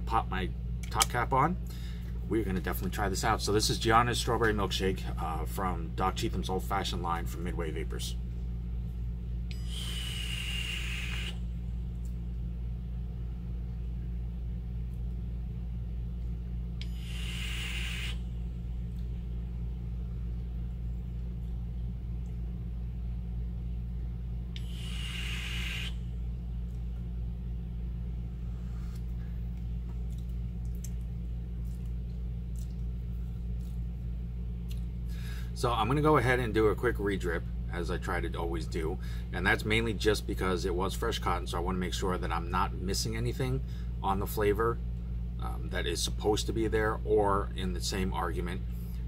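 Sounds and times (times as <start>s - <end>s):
steady low hum: 0.0s - 49.0s
vape draw hiss: 9.6s - 11.4s, 16.8s - 18.2s, 24.6s - 26.0s.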